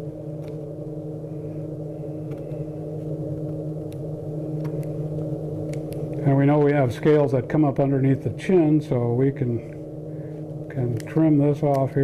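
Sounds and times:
low hum of held tones: 0.0 - 12.0.

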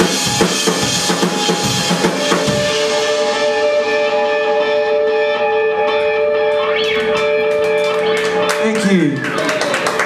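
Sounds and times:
electric guitars ringing chord: 0.0 - 10.0.

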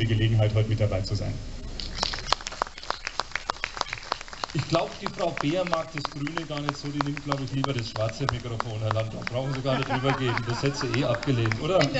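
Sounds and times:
audience applause: 1.8 - 11.9.

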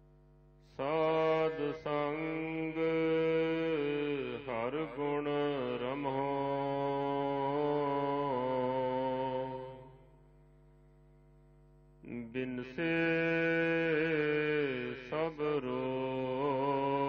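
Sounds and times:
person chanting melodically: 0.8 - 10.0, 12.0 - 17.0.

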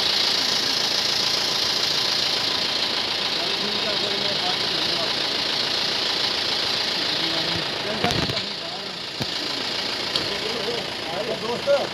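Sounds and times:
steady high hiss: 0.0 - 11.9
vehicle engines idling: 0.0 - 11.9
distant indistinct voices: 2.3 - 11.9.

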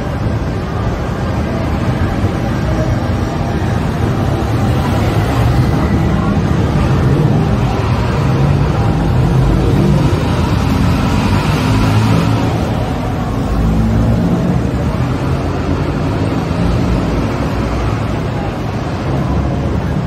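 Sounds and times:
crowd of pedestrians: 0.0 - 20.0
road traffic rumble: 0.0 - 20.0.

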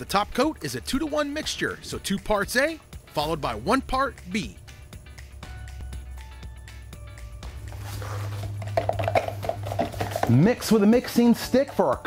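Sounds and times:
background music: 0.0 - 12.0
stick stirring in plastic cup: 7.9 - 10.7.

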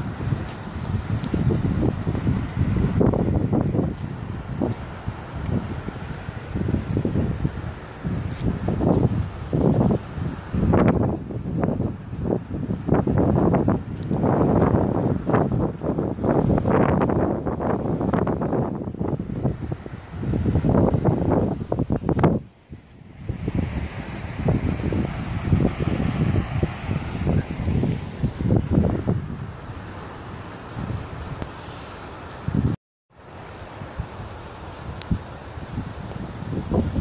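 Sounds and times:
wind buffeting microphone: 0.0 - 32.8, 33.5 - 37.0.

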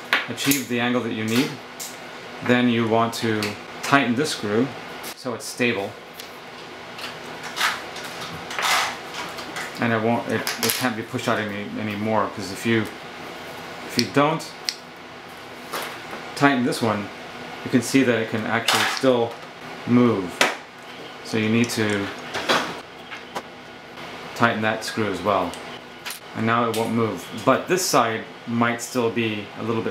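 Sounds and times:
metal scrape: 8.5 - 9.0.

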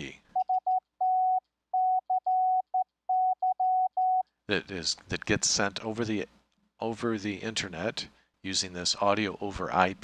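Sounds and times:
morse code sidetone: 0.4 - 4.2.

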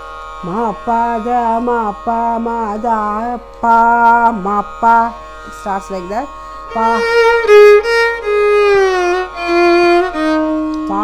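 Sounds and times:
violin playing slow gliding phrase: 4.2 - 11.0.

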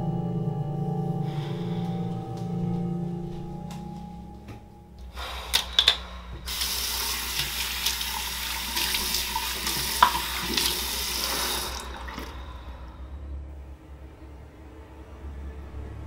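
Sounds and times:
faucet running: 5.5 - 12.5
hands rinsing under water: 6.5 - 12.7.

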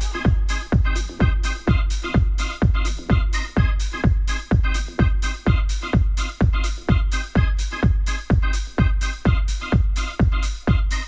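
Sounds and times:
acid house club track: 0.0 - 11.0
hissing hi-hats: 0.0 - 11.0
kick drum: 0.0 - 11.0
sustained bass: 0.0 - 11.0
synth chords: 0.0 - 11.0.

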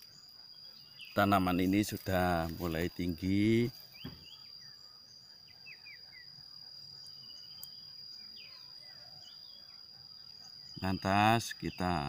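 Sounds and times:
bird chirps: 0.0 - 12.0
insect trilling: 0.0 - 12.0.

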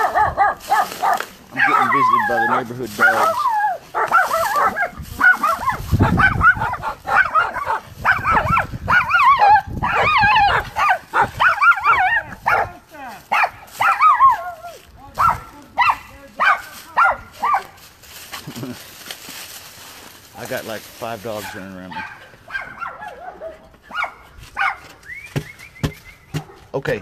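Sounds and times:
dogs barking and yelping: 0.0 - 17.8, 21.3 - 25.1.

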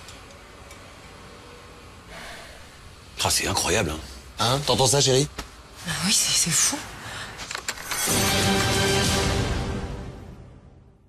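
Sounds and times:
person breathing: 2.0 - 2.9, 6.9 - 7.5.

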